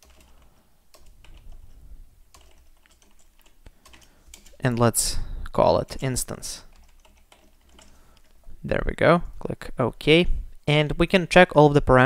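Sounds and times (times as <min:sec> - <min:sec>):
computer keyboard typing: 0:00.0 - 0:04.9, 0:05.8 - 0:08.4.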